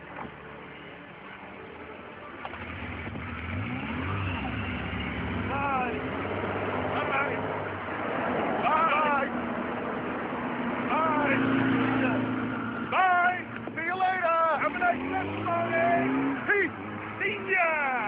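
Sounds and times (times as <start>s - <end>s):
car engine running: 0.0s - 18.0s.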